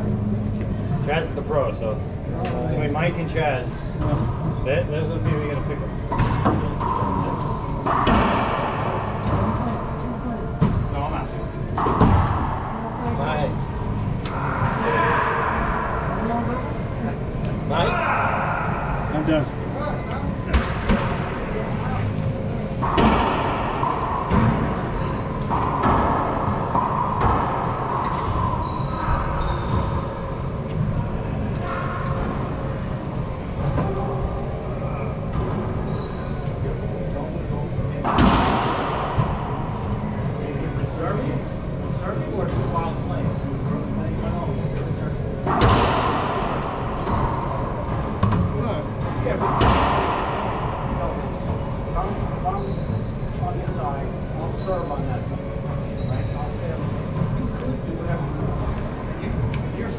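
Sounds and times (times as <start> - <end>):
players' voices: 0.1 - 59.9
racquets hitting ball: 22.8 - 30.0.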